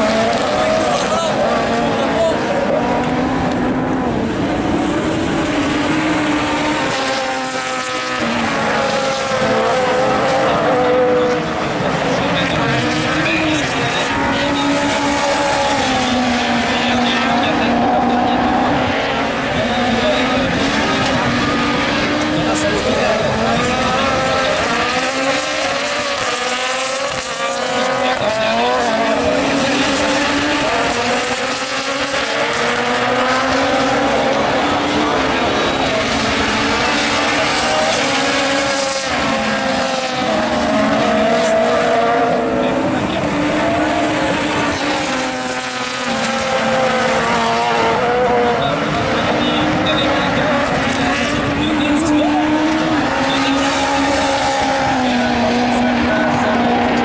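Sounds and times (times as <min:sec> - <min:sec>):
racing car engines revving: 0:00.0 - 0:57.0.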